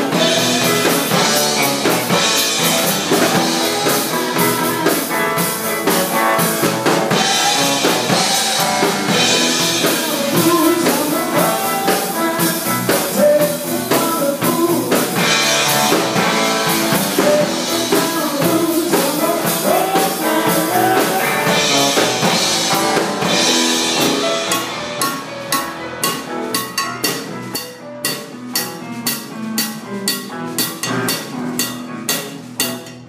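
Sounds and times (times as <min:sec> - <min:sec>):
live band playing: 0:00.0 - 0:33.0.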